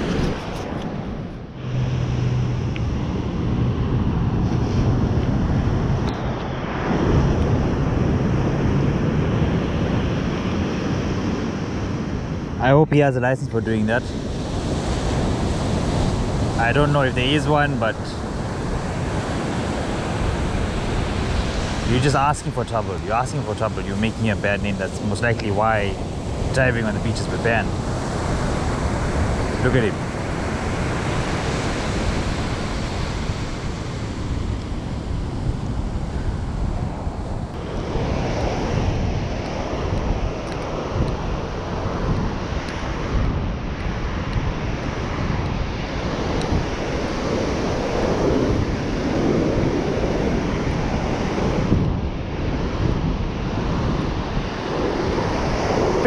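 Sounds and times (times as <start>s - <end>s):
wind rumbling on microphone: 0.0s - 56.0s
surf breaking on beach: 14.1s - 56.0s.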